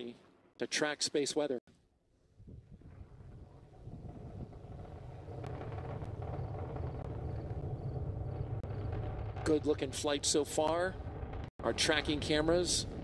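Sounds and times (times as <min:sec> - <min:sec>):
rocket engines rumbling: 0:02.6 - 0:13.0.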